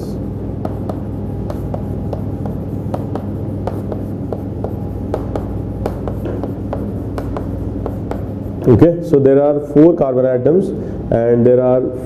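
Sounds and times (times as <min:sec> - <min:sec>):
chalk tapping and scratching: 0:00.0 - 0:09.2
steady low hum: 0:00.0 - 0:12.0.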